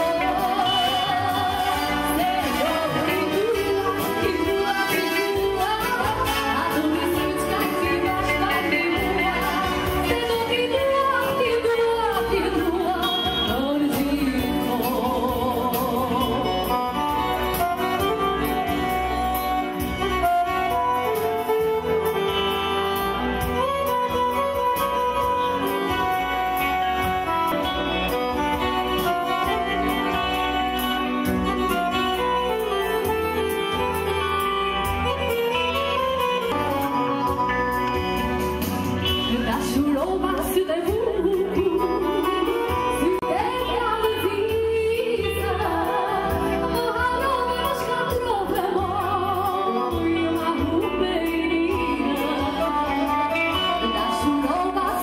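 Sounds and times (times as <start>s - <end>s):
woman singing: 0.0s - 35.7s, 39.0s - 55.0s
keyboard and guitar: 0.0s - 55.0s.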